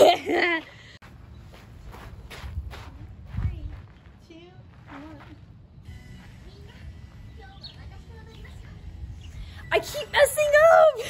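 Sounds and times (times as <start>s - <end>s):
footsteps on wood chips: 1.0s - 7.8s.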